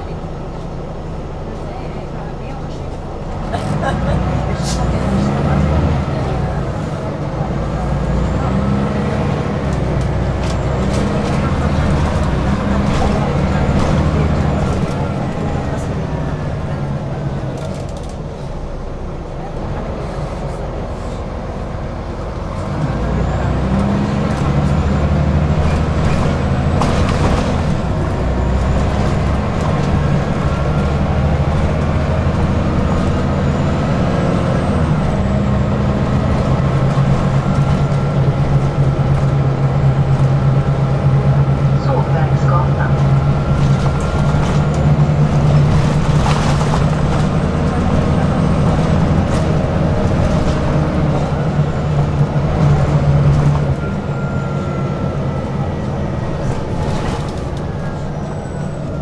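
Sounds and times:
bus engine drone: 0:00.0 - 0:59.0
road rumble: 0:00.0 - 0:59.0.

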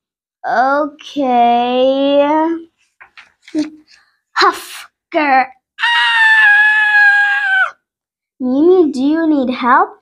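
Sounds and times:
girl's strained high cry: 0:05.8 - 0:07.8.

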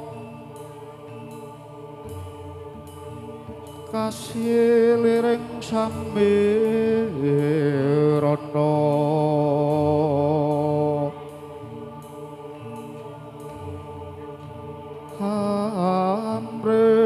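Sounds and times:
person singing held wavering notes: 0:00.0 - 0:17.0.

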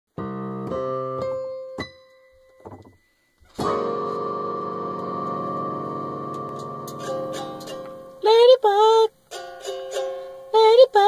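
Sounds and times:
keyboard chord ringing: 0:00.2 - 0:08.3.

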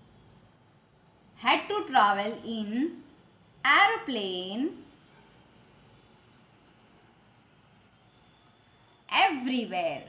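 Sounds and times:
pencil scratching on paper: 0:04.6 - 0:08.6.

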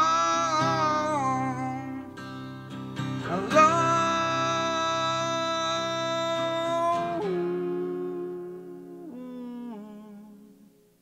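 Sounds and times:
man humming: 0:00.0 - 0:02.2, 0:03.2 - 0:10.9
acoustic guitar chord ringing: 0:00.0 - 0:11.0.

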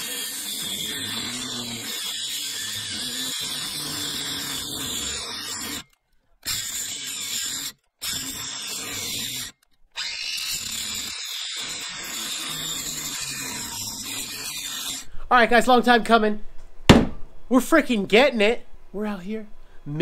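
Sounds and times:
angle grinder cutting steel: 0:00.0 - 0:15.1.

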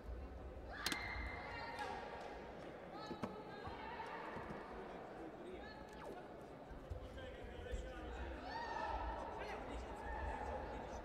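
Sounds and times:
voices calling out in a hall: 0:00.0 - 0:11.0.

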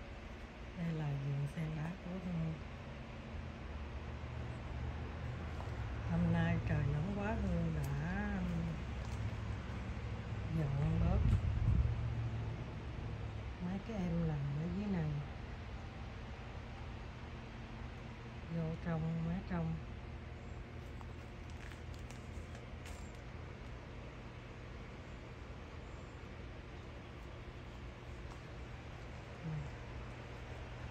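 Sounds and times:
low background hum: 0:00.0 - 0:30.9
woman speaking: 0:00.8 - 0:02.7, 0:06.0 - 0:08.9, 0:10.4 - 0:11.4, 0:13.6 - 0:15.4, 0:18.5 - 0:19.9, 0:29.4 - 0:29.9.

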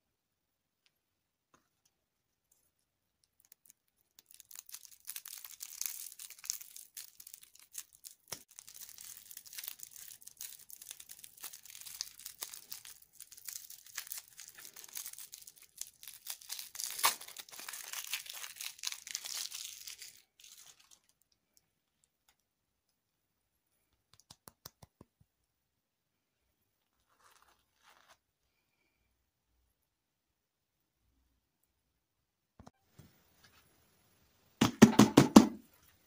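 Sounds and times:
plastic candy wrapper crackling: 0:03.1 - 0:22.4.

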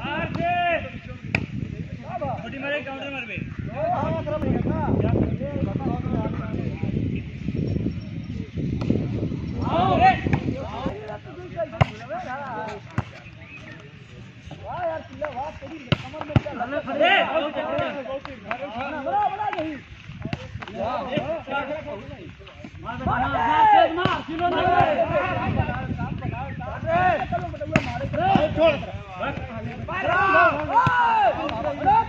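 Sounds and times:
players shouting: 0:14.6 - 0:22.0, 0:22.8 - 0:25.9, 0:26.8 - 0:32.0.

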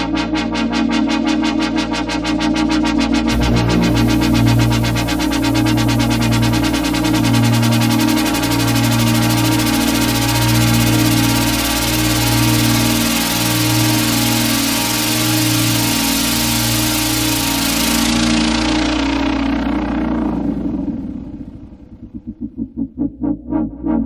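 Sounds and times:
low bass drone: 0:00.0 - 0:24.0
sustained synth chord: 0:03.0 - 0:24.0
bright synth hiss: 0:03.3 - 0:18.4.

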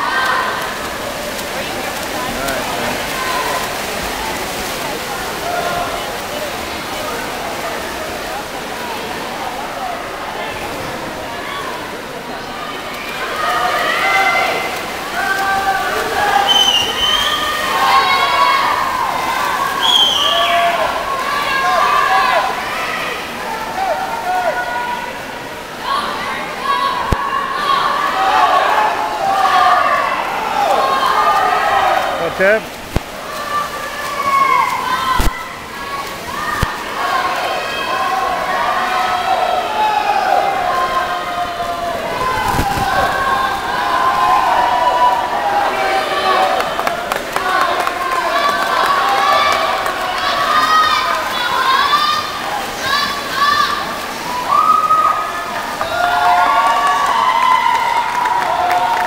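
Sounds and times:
spectators shouting and cheering: 0:00.0 - 0:59.0
swimmers splashing: 0:00.0 - 0:59.0.

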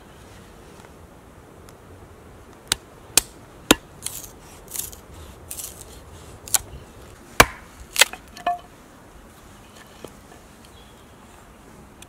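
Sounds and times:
hatchet chopping wood: 0:02.7 - 0:04.9, 0:07.4 - 0:08.6.

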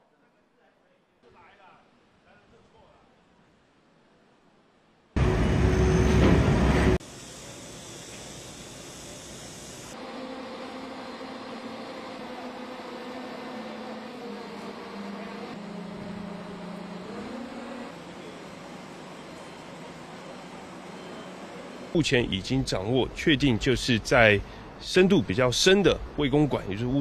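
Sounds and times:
diesel engine running: 0:05.2 - 0:10.0
loud burst of noise: 0:05.2 - 0:12.9.

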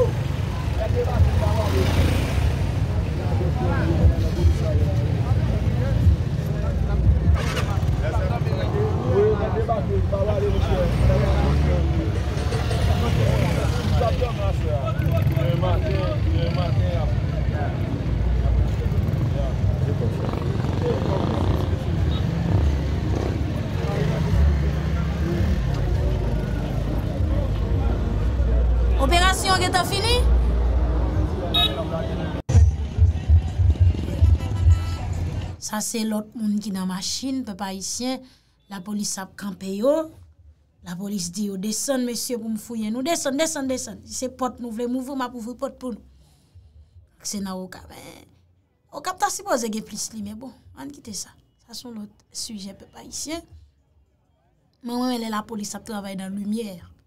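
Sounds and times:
people talking: 0:26.0 - 0:30.3.

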